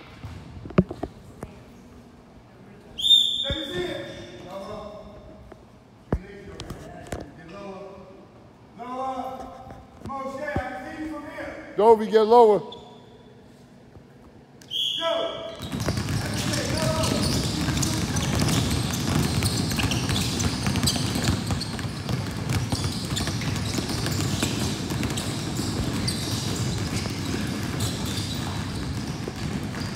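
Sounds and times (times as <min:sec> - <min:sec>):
whistle blast: 0:03.0 - 0:03.8, 0:14.6 - 0:15.3
basketballs bouncing on wood floor: 0:15.5 - 0:29.9.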